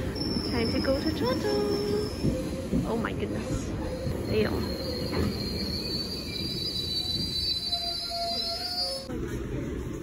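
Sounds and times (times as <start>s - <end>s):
train brakes squealing: 0.0s - 9.2s
train rumble: 0.0s - 10.0s.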